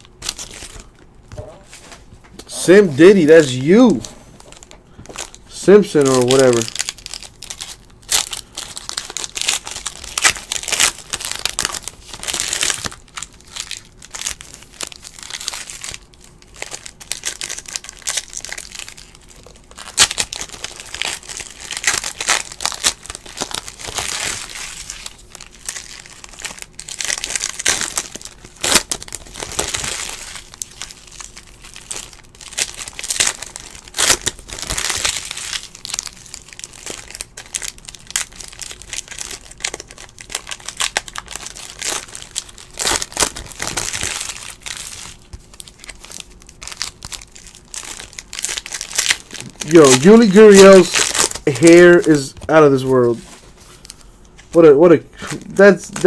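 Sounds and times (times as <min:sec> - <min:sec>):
foil wrappers crinkling and tearing: 0:00.0 - 0:01.0, 0:01.7 - 0:56.0.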